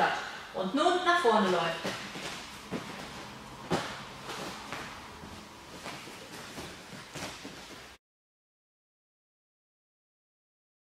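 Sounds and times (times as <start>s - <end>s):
hands and feet thumping on mat: 1.4s - 8.0s.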